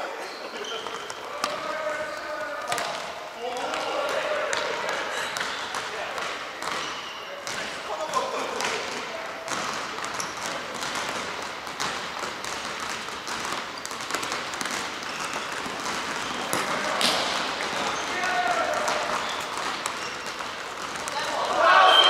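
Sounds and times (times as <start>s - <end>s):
players calling and shouting: 0.0s - 22.0s
ball kicked and bouncing on wood floor: 9.5s - 18.0s.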